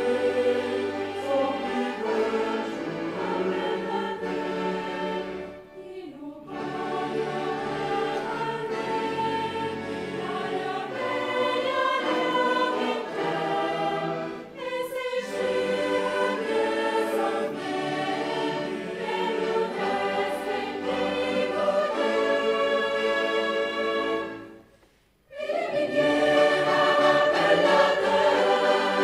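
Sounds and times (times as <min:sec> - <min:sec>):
choir singing held chords: 0:00.0 - 0:29.0.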